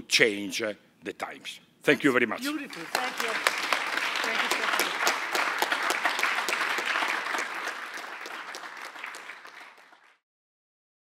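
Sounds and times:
audience applauding: 0:02.4 - 0:10.2.

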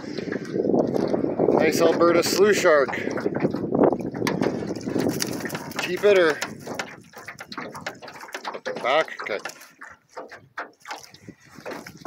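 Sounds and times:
fish thrashing and splashing in net: 0:00.0 - 0:12.0.

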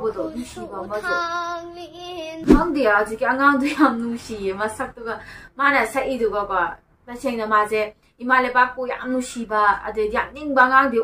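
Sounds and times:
girl speaking: 0:00.0 - 0:02.8.

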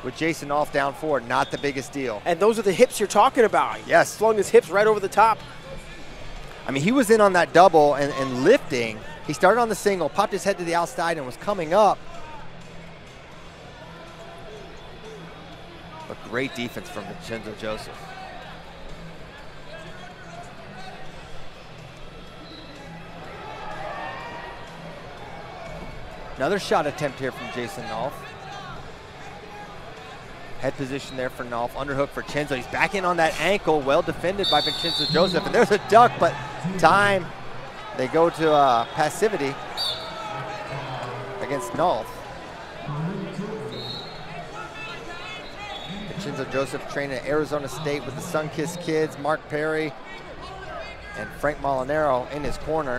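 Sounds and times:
faint background music: 0:00.0 - 0:52.9.

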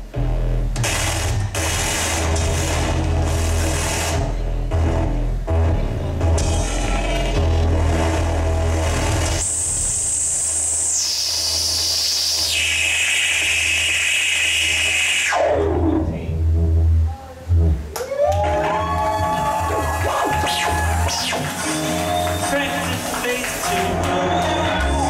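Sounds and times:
electronic synthesizer tones: 0:00.0 - 0:17.9
deep bass drone: 0:00.0 - 0:25.0.

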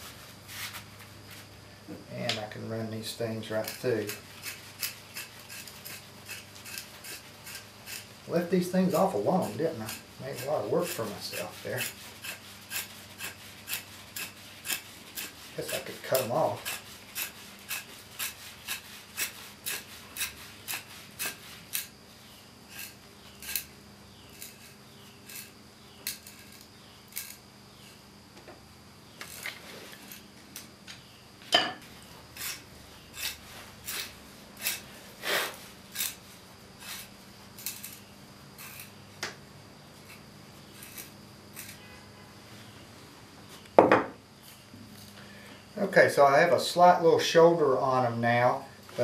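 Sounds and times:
knife paring wood: 0:03.4 - 0:22.0, 0:22.7 - 0:28.0, 0:31.6 - 0:39.0, 0:39.9 - 0:41.9.

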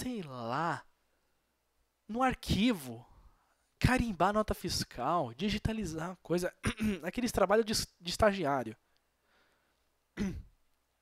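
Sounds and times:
man clearing throat: 0:06.6 - 0:07.1, 0:10.2 - 0:10.6
faint breath: 0:09.1 - 0:10.0.

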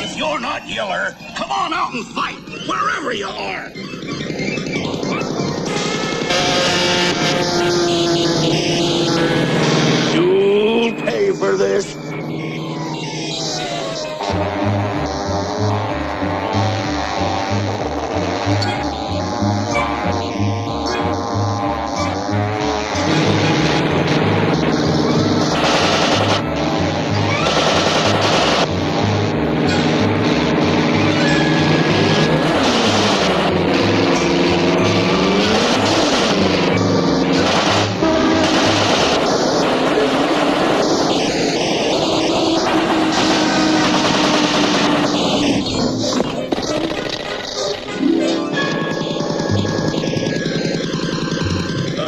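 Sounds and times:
orchestral cartoon music with bass beat: 0:14.2 - 0:25.5
rapid machine-gun fire: 0:22.5 - 0:28.9, 0:29.8 - 0:47.6, 0:48.5 - 0:52.0.

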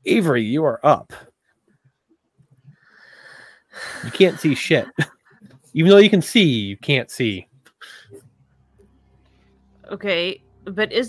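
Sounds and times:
person speaking: 0:04.0 - 0:08.2.

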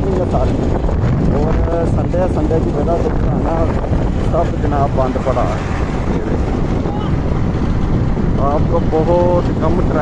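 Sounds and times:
vehicle road noise rumble: 0:00.0 - 0:10.0
wind buffeting microphone: 0:00.0 - 0:10.0.

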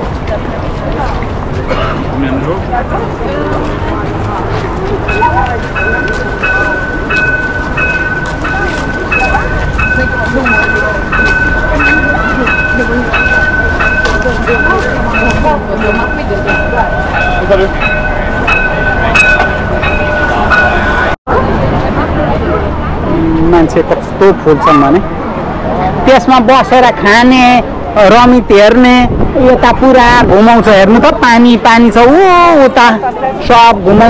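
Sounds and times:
crowd chatter: 0:00.0 - 0:34.0
street noise: 0:00.0 - 0:34.0
steady high electronic tone: 0:05.1 - 0:21.2.

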